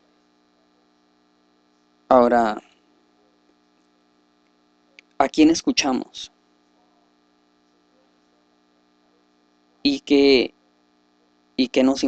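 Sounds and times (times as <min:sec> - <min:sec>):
faint electrical hum: 0:00.0 - 0:12.0
man talking: 0:02.1 - 0:02.6, 0:05.2 - 0:06.3, 0:09.9 - 0:10.5, 0:11.6 - 0:12.0.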